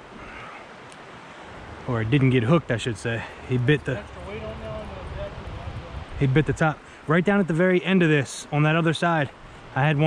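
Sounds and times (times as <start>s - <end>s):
stream rushing over riffles: 0.0s - 10.0s.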